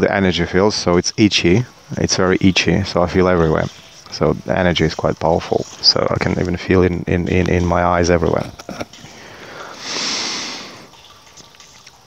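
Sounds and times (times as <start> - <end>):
breath into headset microphone: 9.1 - 10.9.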